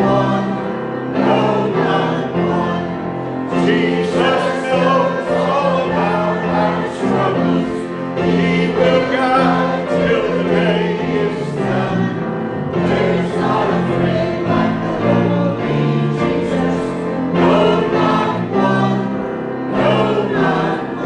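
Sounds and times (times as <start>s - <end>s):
church choir singing a hymn: 0.0s - 21.0s.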